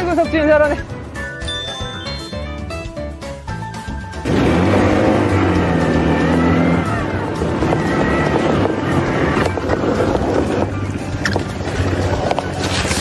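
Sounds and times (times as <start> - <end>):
background music: 0.0 - 13.0
quad bike engines running: 4.2 - 13.0.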